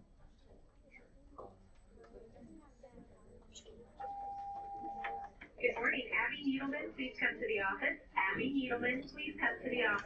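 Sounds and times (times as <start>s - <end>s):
intercom beep: 4.0s - 5.3s.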